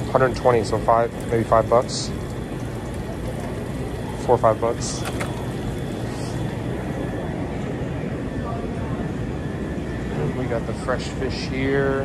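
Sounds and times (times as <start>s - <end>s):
faint distant voices: 0.0s - 12.0s
refrigerated display cases humming: 0.0s - 12.0s
ventilation hum: 0.0s - 12.0s.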